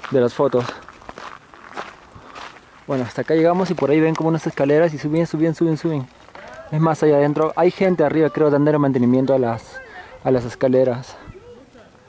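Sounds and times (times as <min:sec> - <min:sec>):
footsteps on dirt path: 0:00.0 - 0:11.9.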